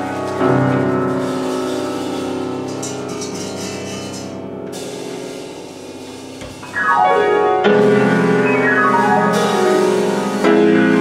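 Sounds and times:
piano chord ringing: 0.0 - 11.0.

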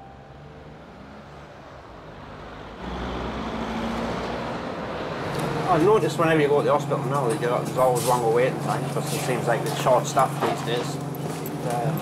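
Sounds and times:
faint street traffic: 0.0 - 12.0.

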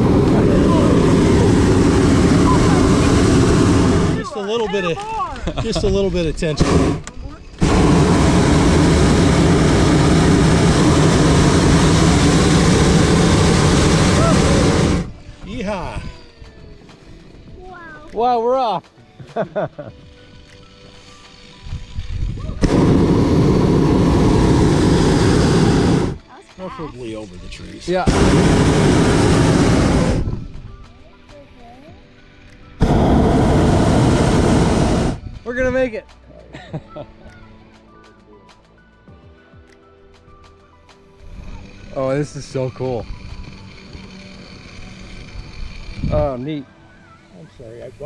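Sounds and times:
propane burner roaring: 0.0 - 4.6, 5.6 - 15.9, 21.5 - 26.2, 27.5 - 30.8, 32.8 - 35.9, 41.3 - 46.6.

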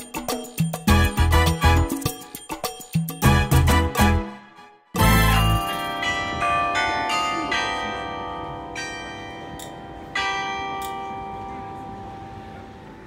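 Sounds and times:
carillon bells ringing: 0.0 - 3.9, 5.0 - 13.0.

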